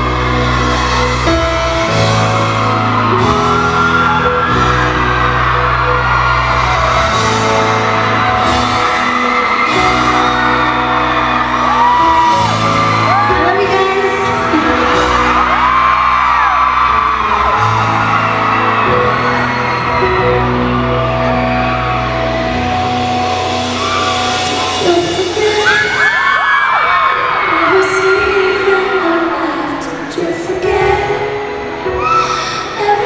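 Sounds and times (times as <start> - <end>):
fans whooping and screaming: 0.0 - 32.8
live pop song over pa: 0.0 - 33.0
woman singing: 13.1 - 15.3, 24.6 - 26.2, 27.5 - 33.0.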